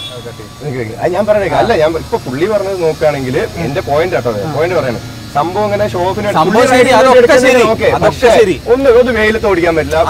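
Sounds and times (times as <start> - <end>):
men talking: 0.0 - 10.0.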